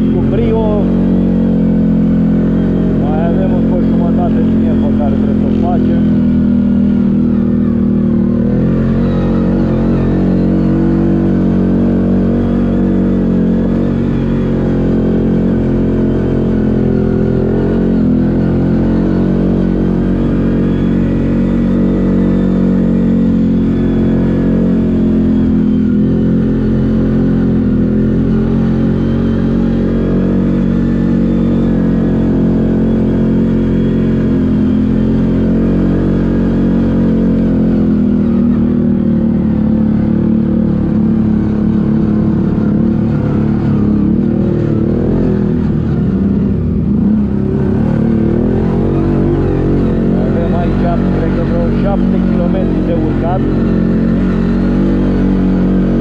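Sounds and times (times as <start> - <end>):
atv engine running: 0.0 - 56.0.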